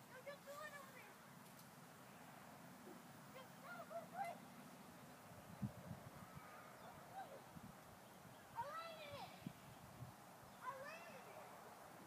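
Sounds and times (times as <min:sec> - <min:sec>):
faint low background noise: 0:00.0 - 0:12.0
bird calls: 0:02.0 - 0:11.4.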